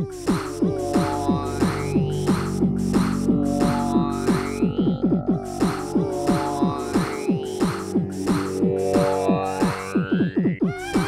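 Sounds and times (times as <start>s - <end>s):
electronic techno music: 0.0s - 10.9s.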